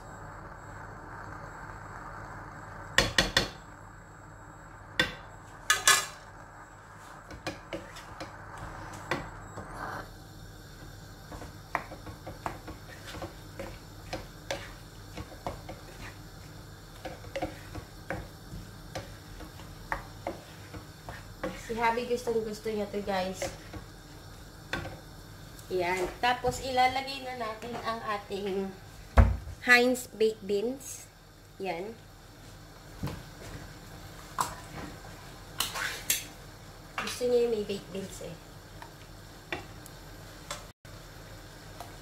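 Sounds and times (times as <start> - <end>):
wooden spatula scraping wok: 6.9 - 10.0, 11.3 - 25.0, 34.7 - 36.2.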